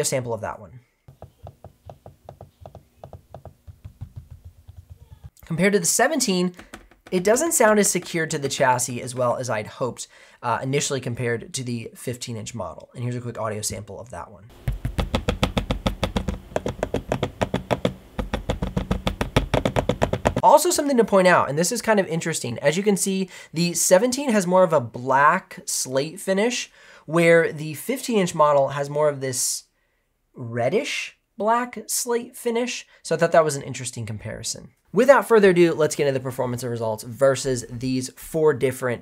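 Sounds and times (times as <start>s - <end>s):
laptop trackpad clicks: 14.7s - 20.4s.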